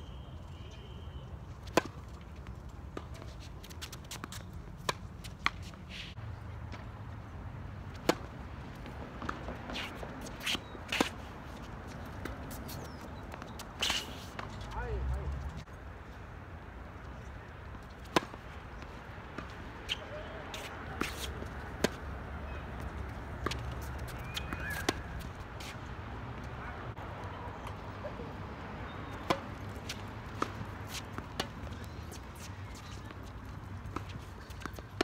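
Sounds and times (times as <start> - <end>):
tennis ball hit by rackets: 7.9 - 11.3, 18.0 - 18.4, 19.3 - 22.0, 23.4 - 25.7, 29.1 - 32.9.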